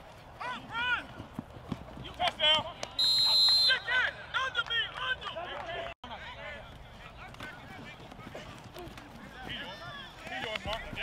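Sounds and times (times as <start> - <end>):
referee's whistle blast: 3.0 - 4.0.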